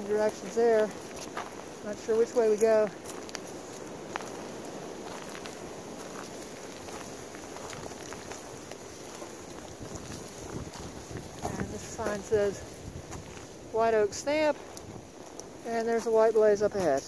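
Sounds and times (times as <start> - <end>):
faint ticks and rustles: 0.0 - 17.0
wind buffeting microphone: 0.0 - 17.0.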